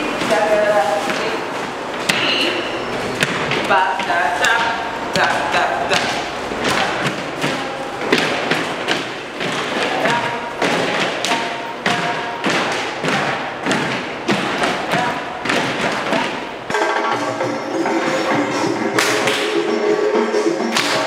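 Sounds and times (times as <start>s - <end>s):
voices: 0.0s - 16.6s
rhythmic thumping: 0.0s - 21.0s
music: 16.7s - 21.0s.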